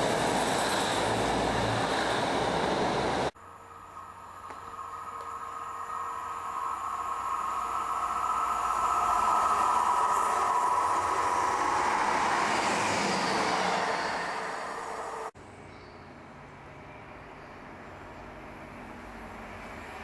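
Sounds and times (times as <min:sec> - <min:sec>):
diesel train passing: 0:00.0 - 0:20.0.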